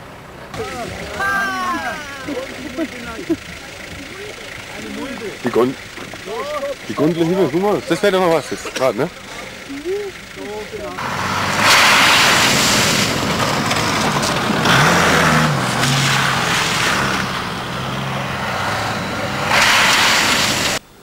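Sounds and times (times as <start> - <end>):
vehicle engines revving under load: 0.0 - 20.8
snow rushing from tyres: 11.0 - 20.8.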